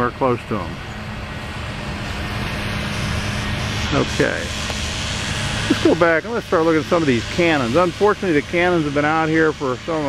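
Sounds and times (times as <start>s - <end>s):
road noise: 0.0s - 10.0s
vehicle engine hum: 0.0s - 10.0s.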